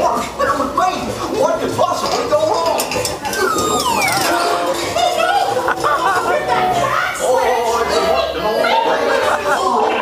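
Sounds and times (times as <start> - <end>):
falling whistle effect: 3.3 - 4.6
cartoon music through speakers: 3.3 - 5.2.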